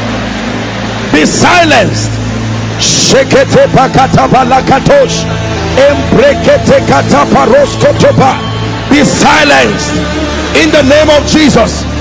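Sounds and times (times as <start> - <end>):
man praying aloud: 2.8 - 10.0.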